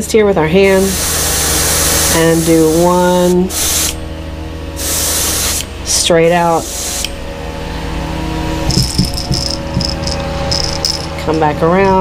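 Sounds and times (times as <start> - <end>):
airbrush hissing spurts: 0.7 - 4.0, 4.8 - 5.7, 6.3 - 7.2
low hum: 5.4 - 12.0
handling rattles and knocks: 8.6 - 12.0.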